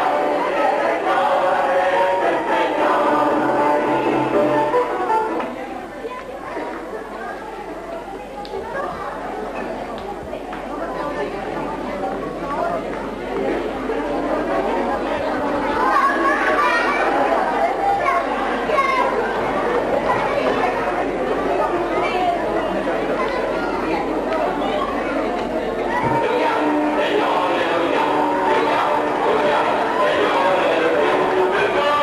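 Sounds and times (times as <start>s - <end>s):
crowd chattering in a hall: 0.0s - 32.0s.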